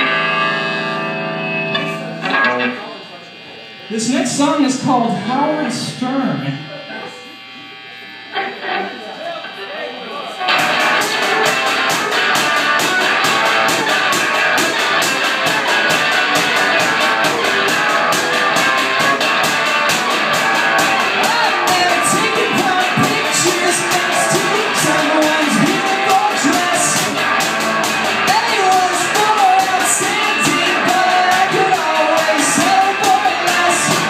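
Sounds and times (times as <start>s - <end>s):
rock band playing: 0.0s - 2.8s, 10.4s - 34.0s.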